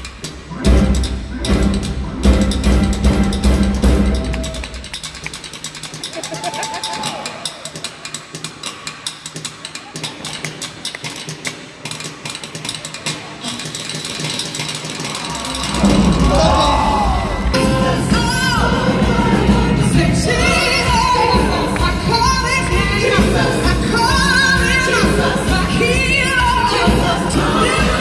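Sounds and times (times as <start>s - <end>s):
live band playing: 0.0s - 8.5s, 13.1s - 28.0s
crowd noise: 0.0s - 28.0s
person singing: 15.8s - 28.0s.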